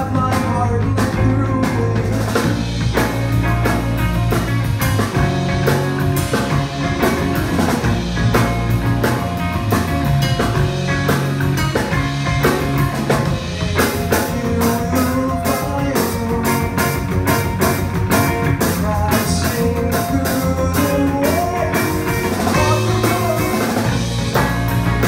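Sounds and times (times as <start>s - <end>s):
drum kit: 0.0s - 25.0s
electric bass: 0.0s - 25.0s
electric guitars: 0.0s - 25.0s.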